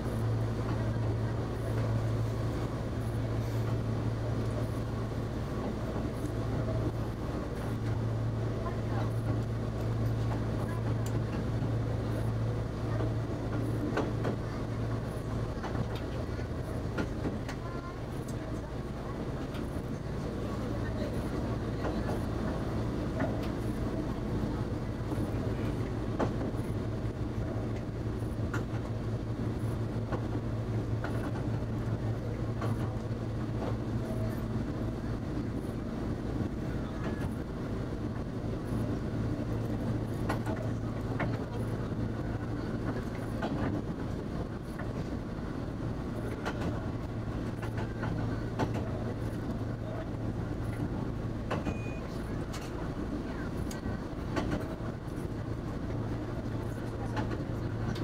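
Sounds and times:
wheels clicking over rail joints: 8.8 - 20.0, 38.1 - 50.0, 50.6 - 55.6, 56.4 - 58.0.

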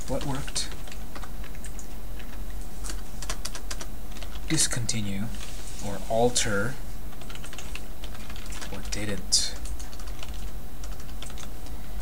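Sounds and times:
computer keyboard typing: 0.0 - 4.6, 7.1 - 11.5
steady low hum: 0.0 - 12.0.

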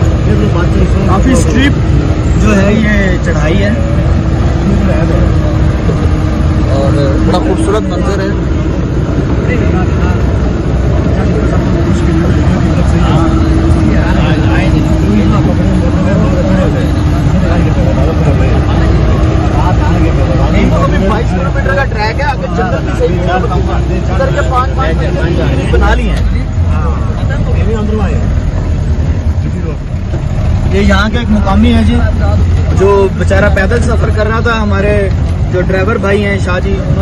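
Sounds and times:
indistinct voices talking: 0.0 - 37.0
vehicle engine under load: 0.0 - 37.0.

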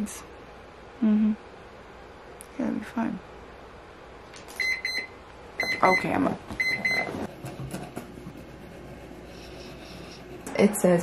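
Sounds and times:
alarm beeping: 4.6 - 7.3.

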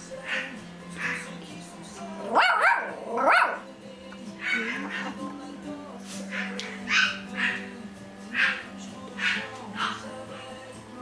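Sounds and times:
dog yelping: 4.4 - 5.3, 6.3 - 7.7, 8.3 - 10.1.

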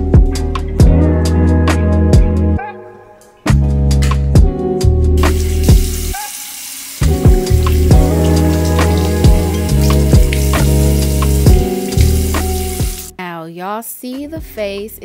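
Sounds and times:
background music with drum beat: 0.0 - 2.5, 3.5 - 6.2, 7.0 - 13.1
water running from faucet: 5.2 - 13.1.

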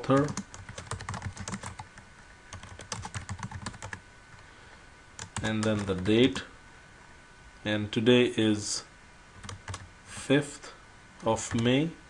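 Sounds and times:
computer keyboard typing: 0.0 - 4.0, 5.2 - 6.4, 9.4 - 9.9, 11.3 - 11.7.

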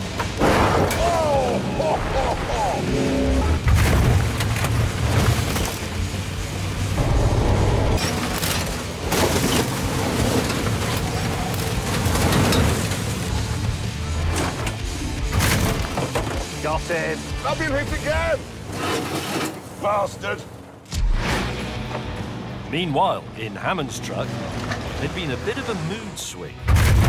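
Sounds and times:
large engines revving: 0.0 - 19.2
heavy vehicle crashes: 0.0 - 20.2, 26.6 - 27.0
background music: 0.0 - 27.0.

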